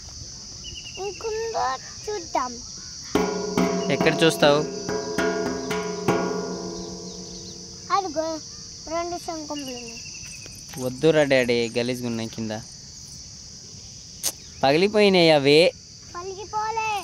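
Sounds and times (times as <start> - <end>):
insects chirring: 0.0 - 17.0
sharp knocks: 3.2 - 8.2.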